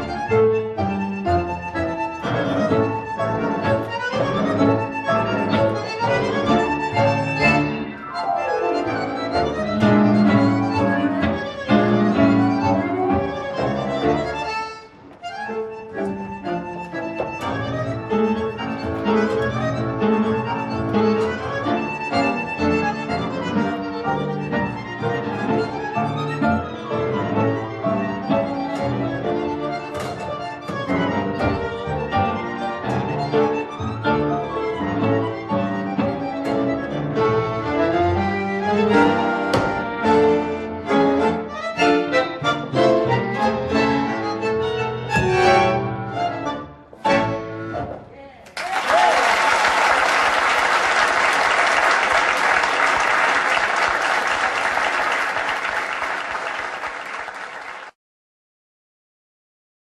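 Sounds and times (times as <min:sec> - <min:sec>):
tango orchestra music: 0:00.0 - 0:48.2, 0:49.8 - 0:57.9
falling pitch slide: 0:07.4 - 0:11.2.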